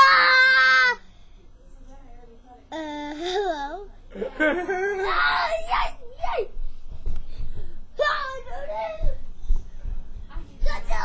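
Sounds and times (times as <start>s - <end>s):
laughter: 4.2s - 5.2s.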